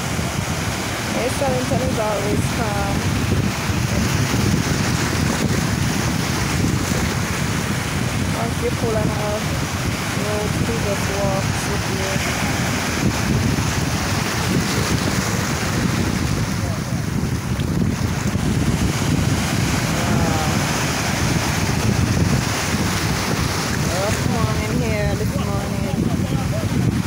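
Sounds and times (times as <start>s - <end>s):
wind buffeting microphone: 0.0s - 27.0s
faint voices: 10.2s - 12.7s, 19.8s - 21.5s, 23.8s - 26.9s.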